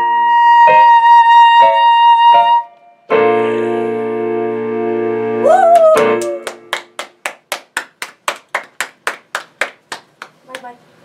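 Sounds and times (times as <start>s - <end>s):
hand clapping: 5.8s - 10.8s.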